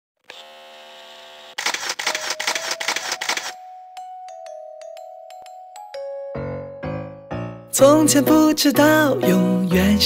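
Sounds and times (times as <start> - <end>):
rapid crackling clicks: 1.6 - 3.6.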